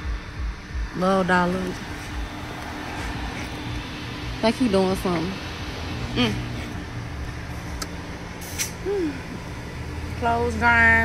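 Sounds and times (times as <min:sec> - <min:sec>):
car idling inside cabin: 0:00.0 - 0:11.0
air hiss into tire: 0:08.4 - 0:09.0.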